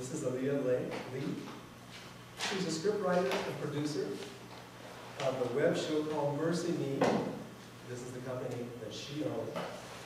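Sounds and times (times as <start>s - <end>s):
man speaking: 2.4s - 4.3s, 5.2s - 7.1s, 7.8s - 9.6s.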